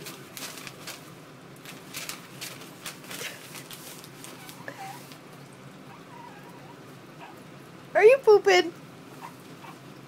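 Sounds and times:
baby whimpering: 4.3 - 5.2, 5.9 - 7.4.

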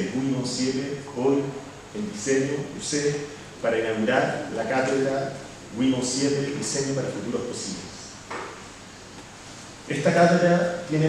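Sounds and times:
man speaking into microphone: 0.0 - 8.2, 9.9 - 11.0.

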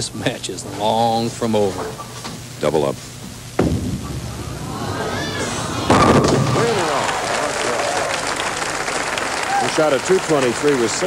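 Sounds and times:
bowling pins crashing: 3.3 - 8.3
bowling ball rolling: 3.3 - 8.8
crowd calling out: 4.4 - 11.0
crowd cheering and applauding: 4.5 - 11.0.

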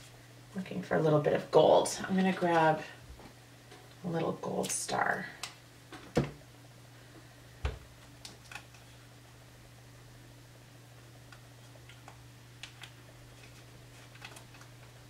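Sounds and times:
hands handling album page: 11.3 - 15.0.

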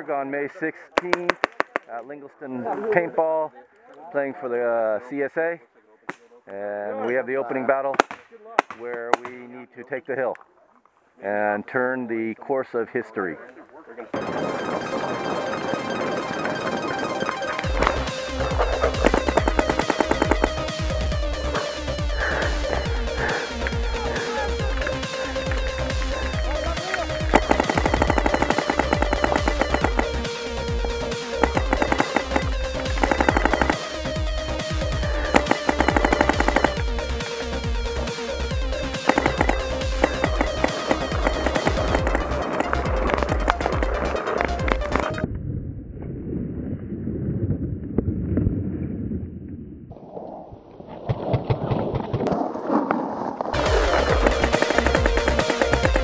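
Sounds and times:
electronic dance music: 14.2 - 45.2, 53.6 - 56.0.

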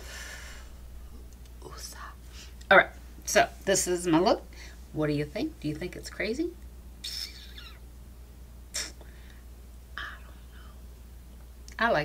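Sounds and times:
low hum: 0.0 - 11.7
woman whispering: 1.6 - 2.2, 10.0 - 10.8.

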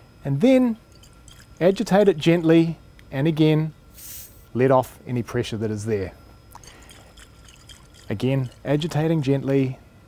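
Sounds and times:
liquid sloshing in glass funnel: 0.9 - 2.4, 6.5 - 9.4.

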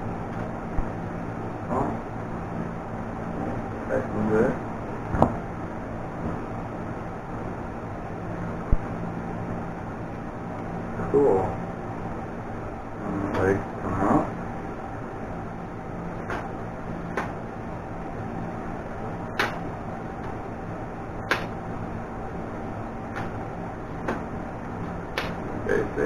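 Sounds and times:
box fan hum: 0.0 - 26.0.

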